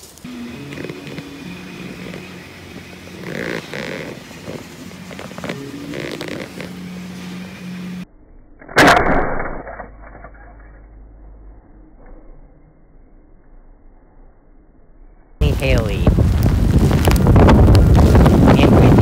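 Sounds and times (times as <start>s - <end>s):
rubbery toy squeaking: 3.2s - 6.8s.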